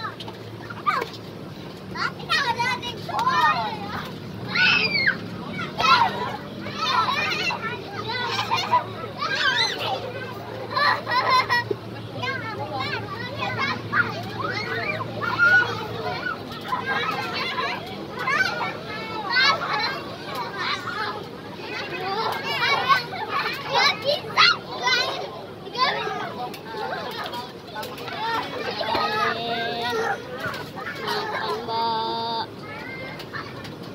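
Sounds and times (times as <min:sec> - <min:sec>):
children shouting and squealing: 0:00.0 - 0:33.9.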